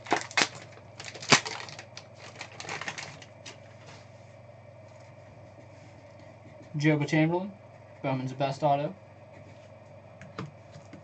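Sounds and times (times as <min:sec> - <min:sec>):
foil wrapper crinkling: 0:00.0 - 0:03.6.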